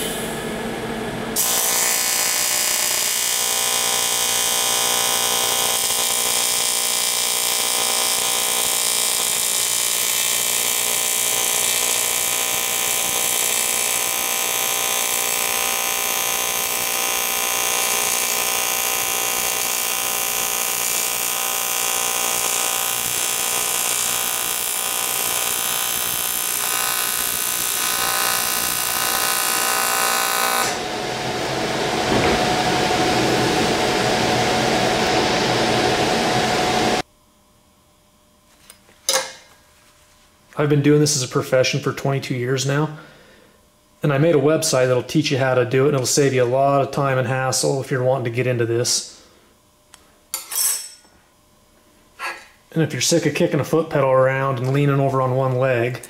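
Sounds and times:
welding arc buzzing and hissing: 0.0s - 37.1s.

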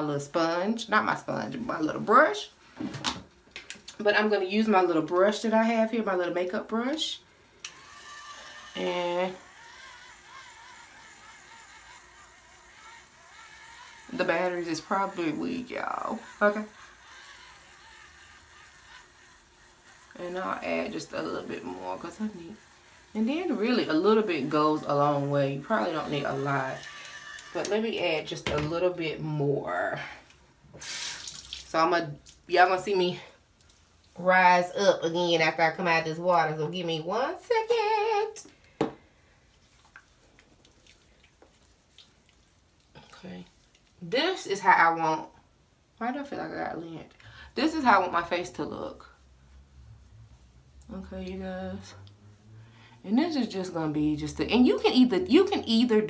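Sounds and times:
facial cleansing brush motor: 4.2s - 33.1s, 43.0s - 45.4s, 46.1s - 56.0s
faint water drips: 31.1s - 32.5s, 39.5s - 44.0s.

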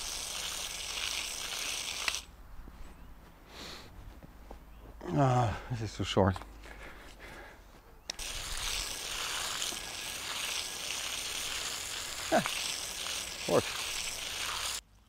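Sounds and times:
hose nozzle spraying water: 0.0s - 2.3s, 8.1s - 14.8s.

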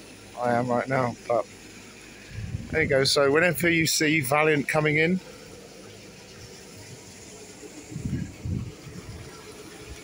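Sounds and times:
harbour water washing: 0.0s - 10.0s
wind: 0.0s - 10.0s
short low rumbles: 2.3s - 3.2s, 7.8s - 9.3s.

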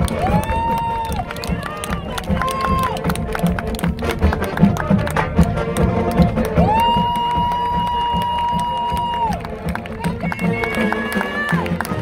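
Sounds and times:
marching band music: 0.0s - 12.0s.

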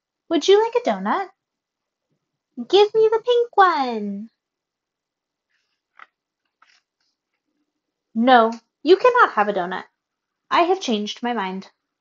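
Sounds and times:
paper page rustling: 5.5s - 7.0s.

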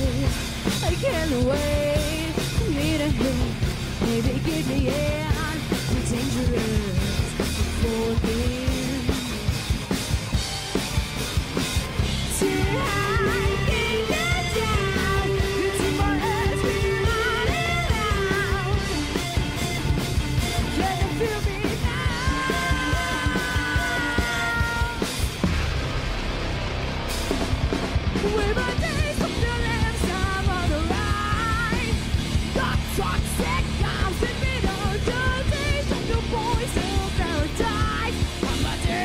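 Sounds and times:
drum kit beat: 0.0s - 39.0s
electric guitars and bass: 0.0s - 39.0s
instrumental rock band: 0.0s - 39.0s
cymbal crash: 25.4s - 28.2s.

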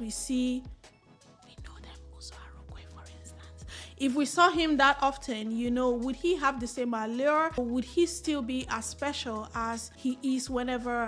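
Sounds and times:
quiet music with low sustained notes: 0.0s - 11.0s
faint whisper: 1.4s - 3.9s.

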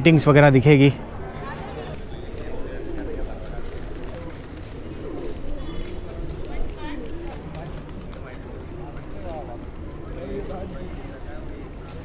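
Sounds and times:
birds cooing: 0.9s - 11.9s.

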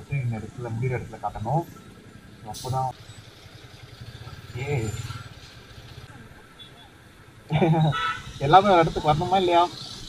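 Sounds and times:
motorcycle engine running low: 3.0s - 6.1s.

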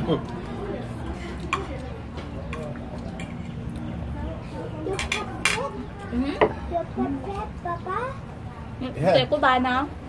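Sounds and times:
faint background voices: 0.0s - 10.0s
cutlery clinking on a plate: 2.5s - 3.6s, 4.9s - 5.7s.

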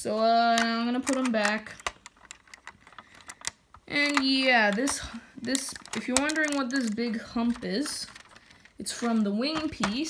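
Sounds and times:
small plastic clicks: 0.4s - 10.0s.

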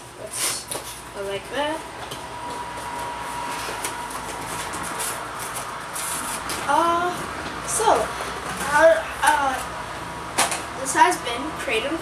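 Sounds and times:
faint steady whine: 0.0s - 12.0s.

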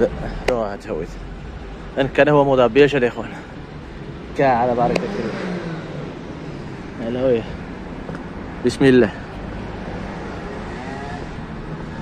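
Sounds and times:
street noise: 0.0s - 12.0s
car engine passing: 1.1s - 12.0s.

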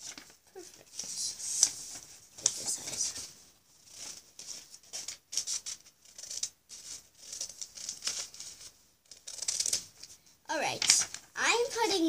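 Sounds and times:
scissors snipping paper: 3.9s - 9.9s.

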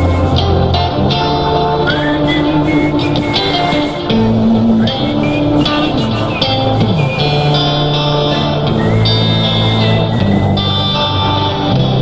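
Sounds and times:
bass line: 0.0s - 12.0s
guitar melody: 0.0s - 12.0s.

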